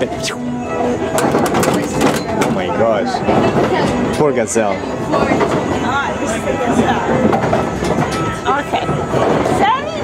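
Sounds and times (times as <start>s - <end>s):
carousel music: 0.0s - 10.0s.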